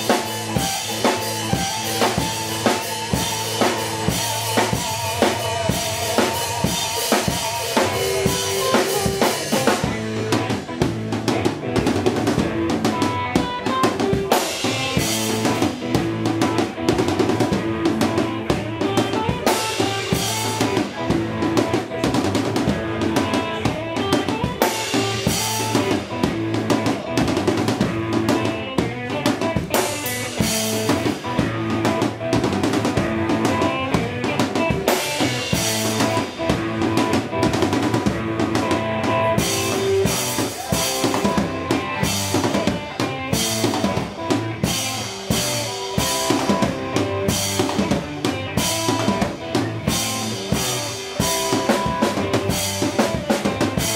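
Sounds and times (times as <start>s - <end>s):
amplified electric guitar: 0.0s - 53.9s
drum kit beating a groove: 0.0s - 53.9s.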